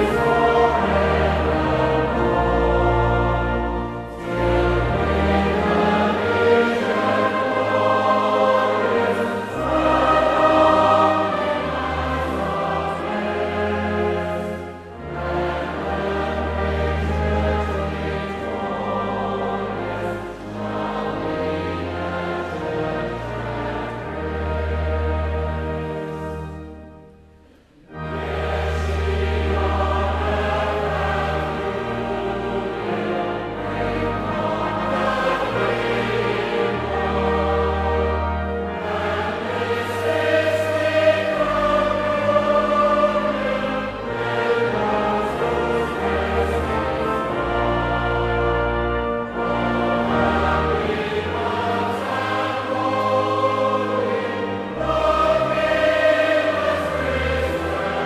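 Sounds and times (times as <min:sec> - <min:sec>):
choir with orchestra: 0:00.0 - 0:58.0
instrumental accompaniment: 0:00.0 - 0:58.0.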